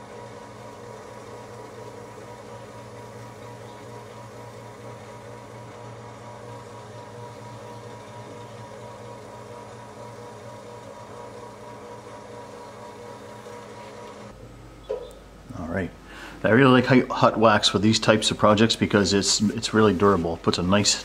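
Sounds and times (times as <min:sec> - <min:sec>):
paper towel buffing spinning wood: 0:00.0 - 0:14.3, 0:16.6 - 0:21.0
wood lathe motor hum: 0:00.0 - 0:14.4.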